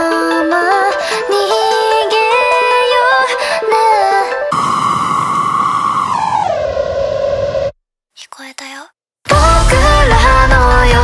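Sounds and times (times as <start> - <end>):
held synthesizer tone: 4.5 - 7.7.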